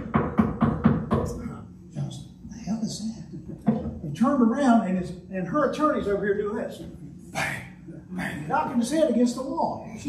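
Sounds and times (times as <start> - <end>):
knocks on a hard surface: 0.0 - 1.4.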